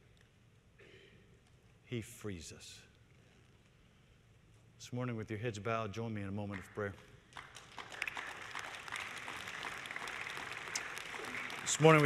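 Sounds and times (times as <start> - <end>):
congregation rustling: 8.0 - 12.0.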